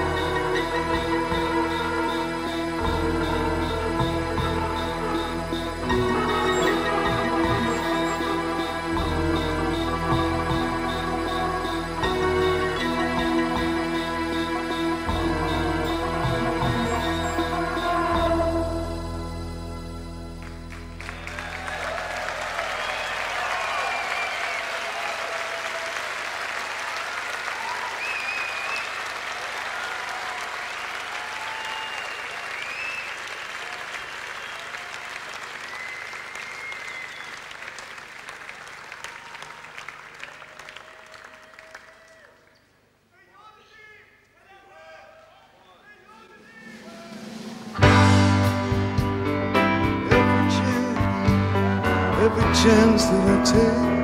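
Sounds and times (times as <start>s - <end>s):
band playing loudly: 0.0s - 19.3s, 46.4s - 54.0s
audience applauding and cheering: 20.4s - 42.7s
whistles: 22.5s - 25.2s, 27.6s - 29.2s, 30.6s - 37.9s.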